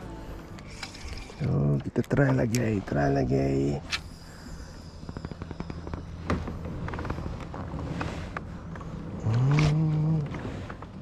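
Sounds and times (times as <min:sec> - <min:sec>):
fishing reel clicking: 0:00.6 - 0:01.5
man humming: 0:09.1 - 0:10.5.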